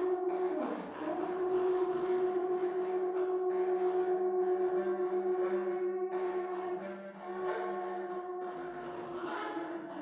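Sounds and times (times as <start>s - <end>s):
contrabass clarinet long notes: 0.0s - 10.0s
saxhorn long notes: 0.0s - 10.0s.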